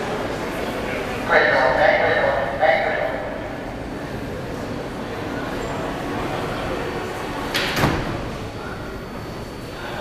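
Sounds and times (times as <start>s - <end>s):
station background noise: 0.0s - 10.0s
subway doors closing with thump: 3.4s - 9.8s.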